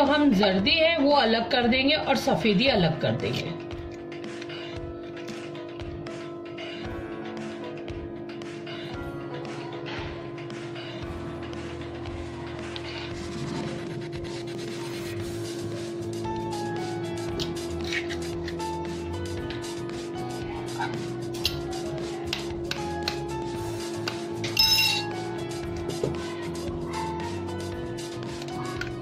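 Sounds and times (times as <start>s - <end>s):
background music: 0.0s - 29.0s
steady hum: 0.0s - 29.0s.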